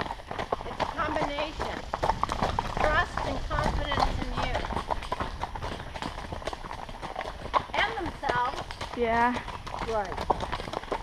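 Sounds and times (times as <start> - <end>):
horse hooves on gravel: 0.0 - 11.0.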